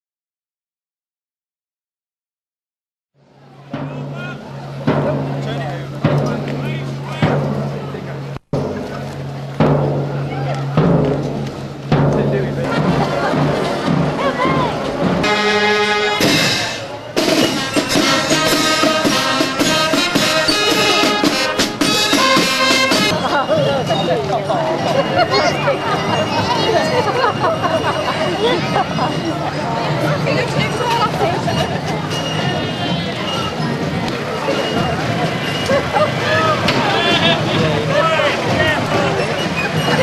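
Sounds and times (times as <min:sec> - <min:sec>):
crowd voices: 0:03.2 - 0:40.0
street parade band music: 0:03.2 - 0:40.0.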